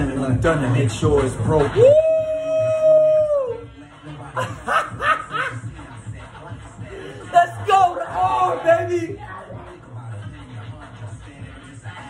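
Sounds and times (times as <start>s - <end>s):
man howling excitedly: 1.8s - 3.6s.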